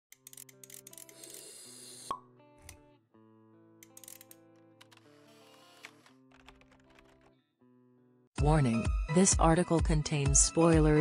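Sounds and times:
background music with held notes: 2.1 - 11.0.

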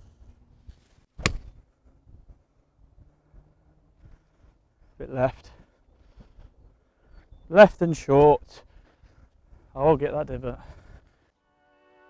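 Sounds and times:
golf club striking ball: 1.2 - 1.6.

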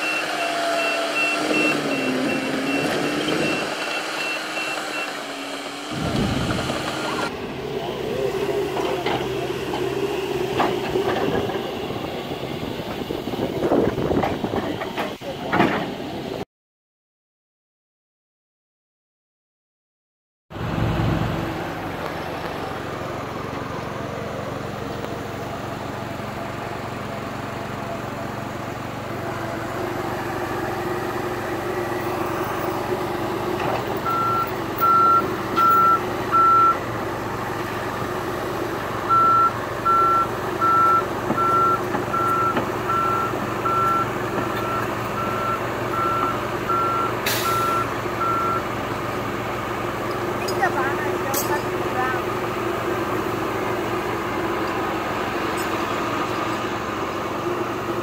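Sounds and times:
excavator diesel engine running: 0.0 - 16.4, 20.5 - 58.0
travel alarm beeping: 34.1 - 36.8, 39.1 - 48.6.

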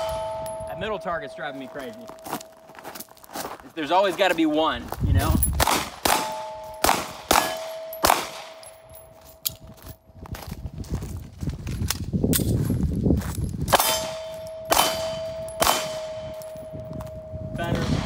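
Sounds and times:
steel plates ringing: 0.0 - 3.0, 6.2 - 9.4, 13.8 - 17.7
pistol shots: 5.6 - 8.8, 13.7 - 16.5.

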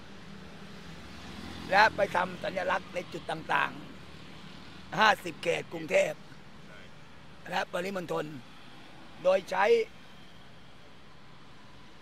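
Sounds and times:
distant street traffic: 0.0 - 12.0
man speaking: 1.7 - 3.9, 4.9 - 6.9, 7.5 - 8.4, 9.2 - 9.9.

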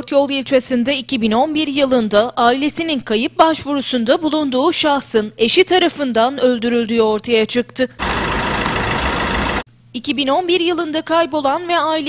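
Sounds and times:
vehicle engine running: 8.0 - 9.6.

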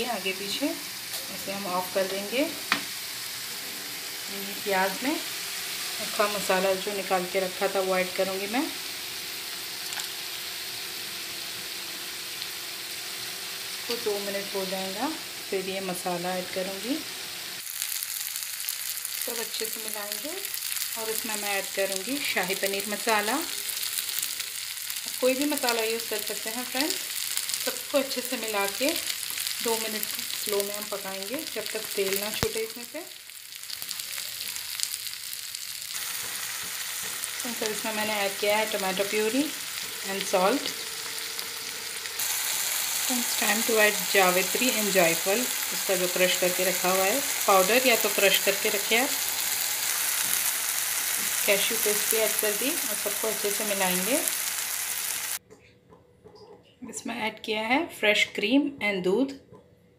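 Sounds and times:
onion paste sizzling in oil: 0.0 - 55.4
crackles while stirring: 17.6 - 55.4.

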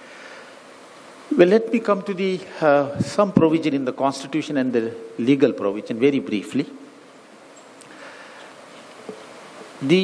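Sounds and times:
faint high hum: 0.0 - 10.0
man talking: 1.3 - 6.8, 9.8 - 10.0.

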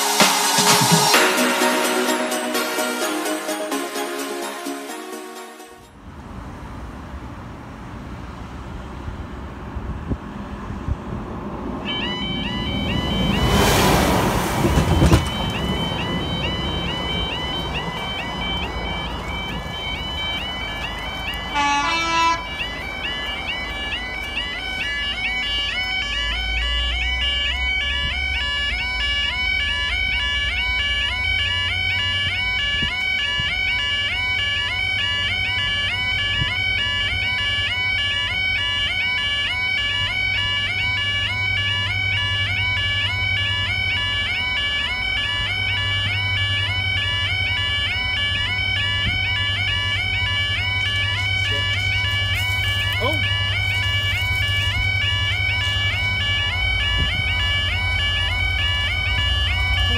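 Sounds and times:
two-tone crossing alarm: 0.0 - 6.1, 11.8 - 59.9.

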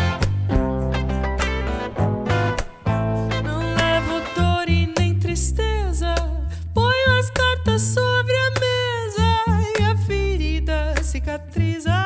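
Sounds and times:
electric bass: 0.0 - 12.0
guitar: 0.0 - 12.0
woman singing: 3.4 - 12.0.

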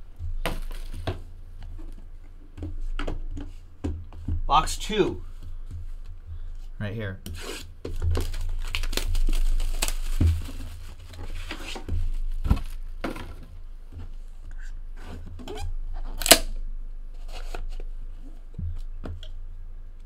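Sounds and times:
cardboard and wrapping tearing: 7.4 - 12.7.

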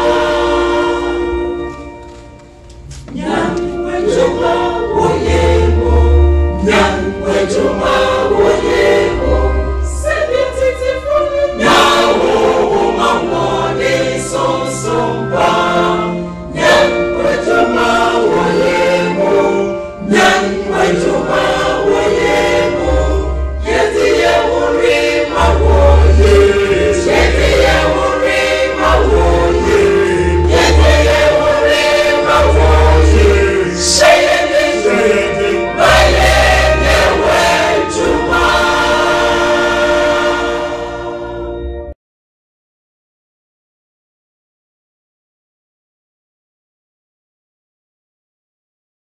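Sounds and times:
choir singing gospel in harmony: 0.0 - 1.9, 3.0 - 41.8.

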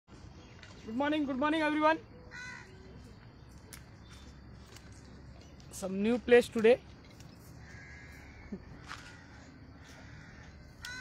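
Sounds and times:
faint outdoor background: 0.1 - 11.0.

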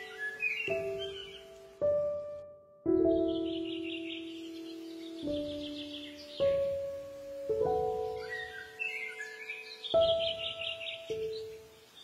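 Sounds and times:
slow calm instrumental music: 0.0 - 12.0
songbirds chirping: 0.0 - 12.0.

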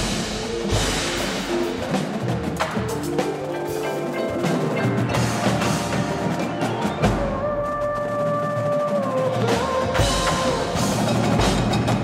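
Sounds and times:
drumline rapid strikes: 0.0 - 12.0.

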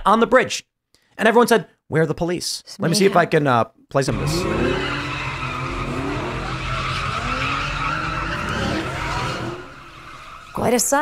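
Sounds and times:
car engines running: 4.1 - 11.0
car tyres squealing: 4.1 - 11.0.

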